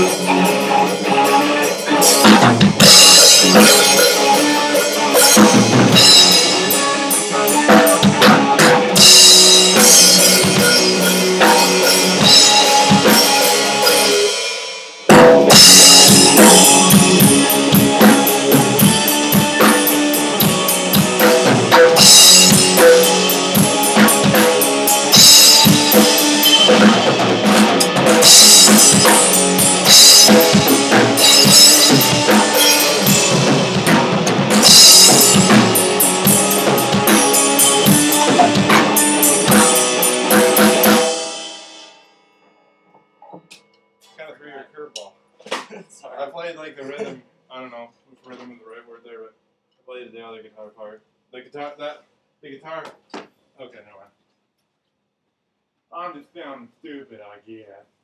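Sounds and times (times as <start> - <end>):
electric guitar: 0.0 - 14.5, 15.1 - 41.4
drum kit: 0.0 - 42.2.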